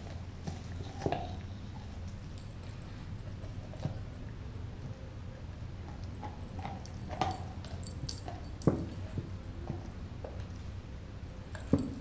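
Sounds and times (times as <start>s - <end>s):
dog gnawing a bone: 0.0s - 12.0s.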